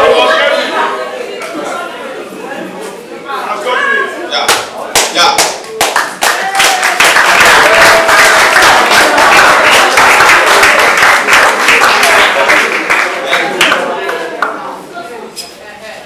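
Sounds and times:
students clapping and cheering: 0:04.5 - 0:14.6.

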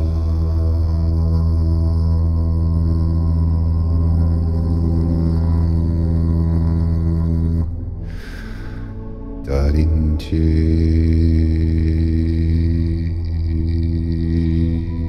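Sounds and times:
deep vocal drone: 0:00.0 - 0:15.0.

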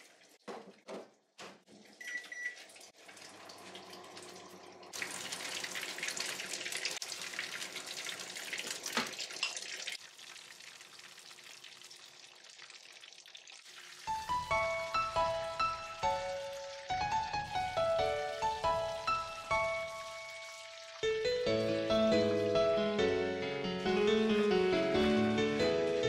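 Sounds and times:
microwave oven beep: 0:02.0 - 0:02.6
patties sizzling in a frying pan: 0:08.4 - 0:20.1
background music with melody: 0:14.1 - 0:26.0.

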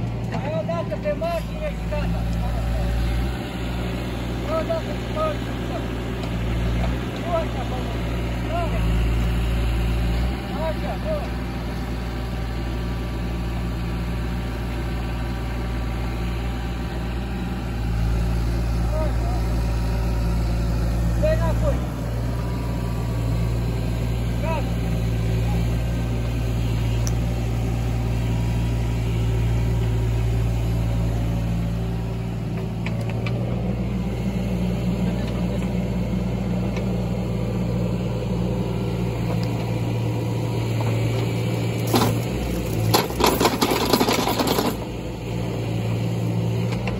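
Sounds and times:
engine idling: 0:00.0 - 0:46.9.

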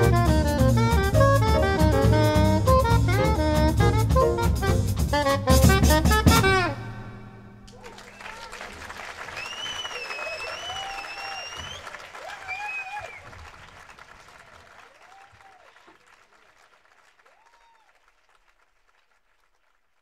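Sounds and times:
audience applauding and cheering: 0:07.7 - 0:19.8
high wavering whistle: 0:09.4 - 0:11.9.

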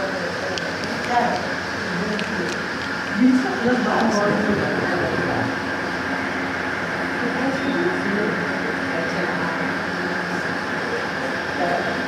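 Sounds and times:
low voices murmuring: 0:00.0 - 0:12.0
steady hum: 0:00.0 - 0:12.0.

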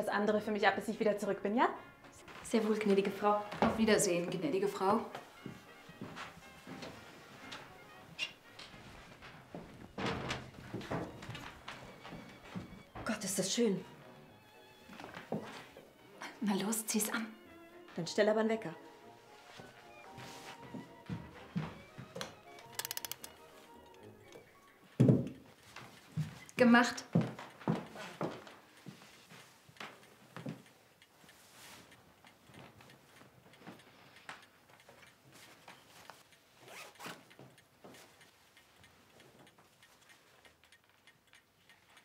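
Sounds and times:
soft background music: 0:00.0 - 0:39.9
alarm clock ratcheting clicks: 0:22.4 - 0:26.6, 0:30.6 - 0:42.0
zipper rasping: 0:36.6 - 0:37.2.

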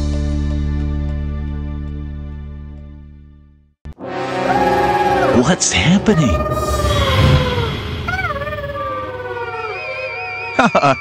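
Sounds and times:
falling howl-like wail: 0:04.4 - 0:10.4
high warbling tone: 0:04.5 - 0:10.0.

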